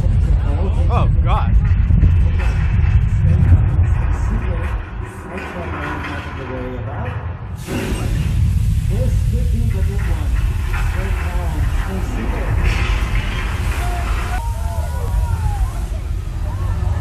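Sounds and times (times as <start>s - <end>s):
heavy loud rumbling: 0.0s - 17.0s
hissing rush: 7.5s - 17.0s.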